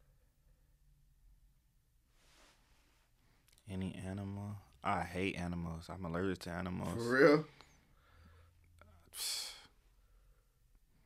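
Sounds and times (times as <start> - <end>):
person sighing: 6.9 - 7.6.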